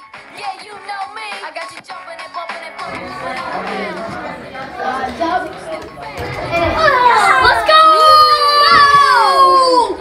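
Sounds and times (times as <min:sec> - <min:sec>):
children talking: 0:02.8 - 0:10.0
children shouting and shrieking: 0:04.8 - 0:10.0.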